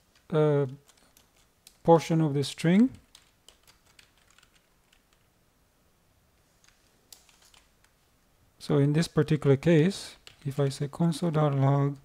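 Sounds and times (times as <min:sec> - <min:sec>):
computer keyboard typing: 0:00.6 - 0:01.8, 0:03.0 - 0:05.3, 0:06.6 - 0:07.7, 0:10.2 - 0:10.5.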